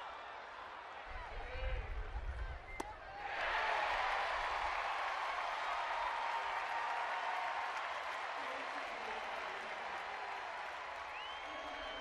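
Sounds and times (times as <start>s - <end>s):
crowd applauding: 3.6s - 12.0s.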